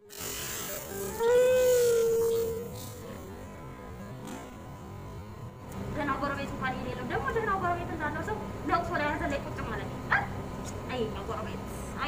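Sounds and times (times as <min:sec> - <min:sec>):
woman talking: 0:05.9 - 0:12.0.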